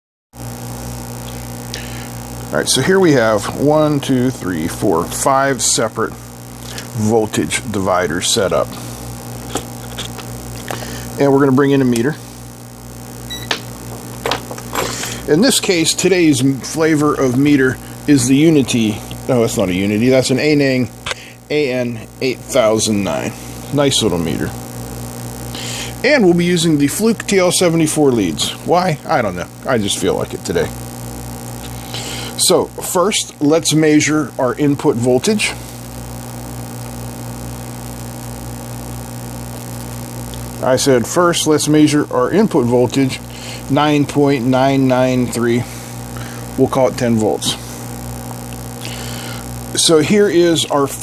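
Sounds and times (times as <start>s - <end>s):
low electrical hum: 0.4s - 51.0s
short electronic beep: 13.3s - 13.5s.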